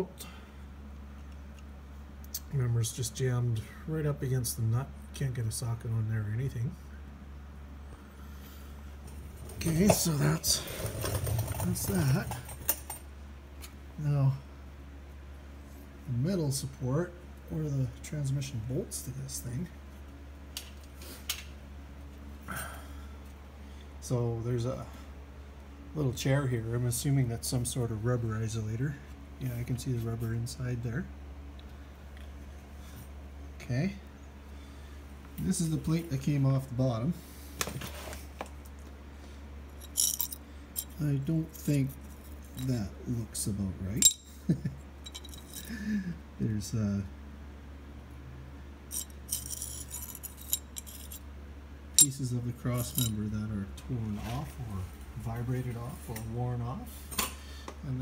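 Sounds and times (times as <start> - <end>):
steady low hum: 0.0 - 58.0
metal pieces clinking and rattling: 39.8 - 41.0, 44.0 - 44.3, 45.0 - 45.8, 48.9 - 51.2, 52.8 - 53.2.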